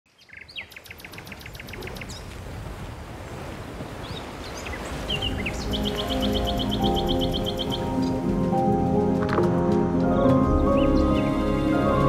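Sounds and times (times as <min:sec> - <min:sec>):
birds chirping in trills: 0:00.1 - 0:02.3, 0:04.0 - 0:08.8, 0:10.5 - 0:11.9
music: 0:05.2 - 0:12.0.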